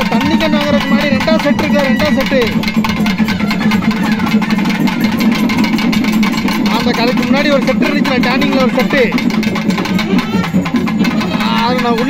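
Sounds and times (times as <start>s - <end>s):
fast folk drumming: 0.0s - 12.0s.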